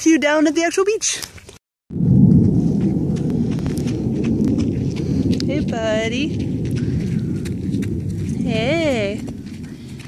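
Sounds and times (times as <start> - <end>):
wind buffeting microphone: 1.9 - 10.0.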